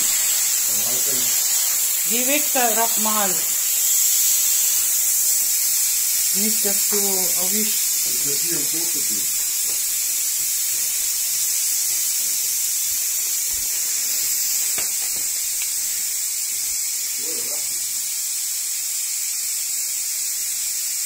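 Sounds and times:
air pump hissing: 0.0s - 21.0s.

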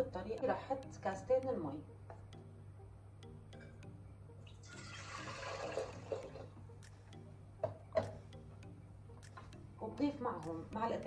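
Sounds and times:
faint background music: 0.0s - 11.0s
water pouring into metal bowl: 4.6s - 6.4s.

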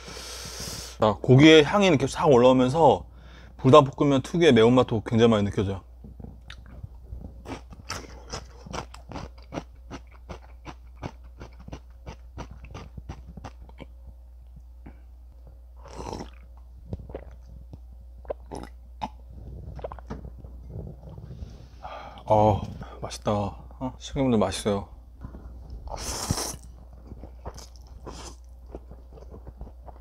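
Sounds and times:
person chewing noodles: 7.4s - 14.0s, 15.8s - 17.5s, 18.2s - 20.1s, 25.9s - 30.0s.

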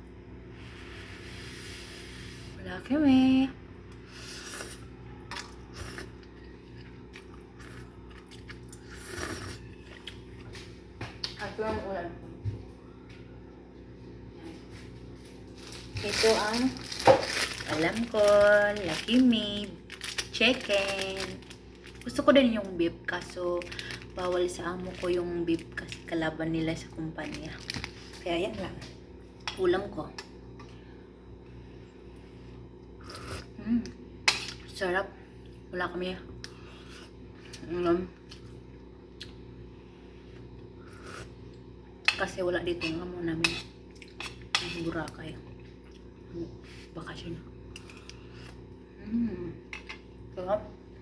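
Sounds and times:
low machine hum: 0.0s - 51.0s
person slurping and chewing noodles: 4.0s - 10.2s.

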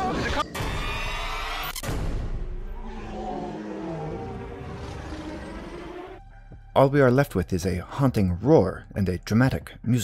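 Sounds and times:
low monster roar: 2.8s - 6.2s.

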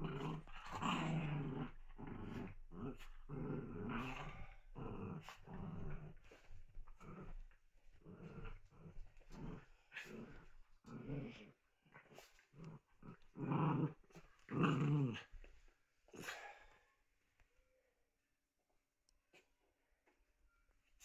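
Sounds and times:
small dogs growling in play: 0.0s - 16.7s.

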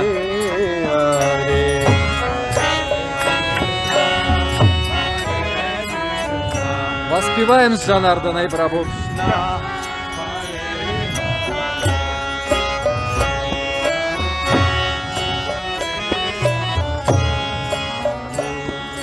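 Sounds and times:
harmonium chords: 0.0s - 19.0s
sharp high ticks: 0.0s - 19.0s.

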